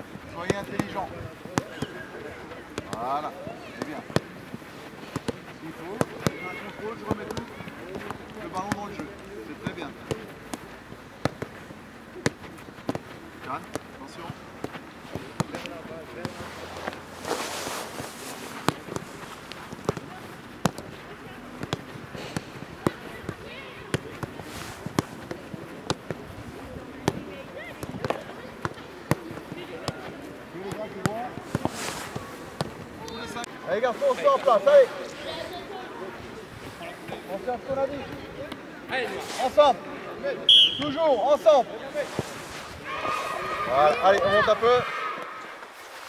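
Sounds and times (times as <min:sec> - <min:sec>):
footballs being kicked: 0:00.1 - 0:33.5
faint children's voices: 0:01.4 - 0:08.4, 0:20.0 - 0:30.6, 0:42.6 - 0:45.6.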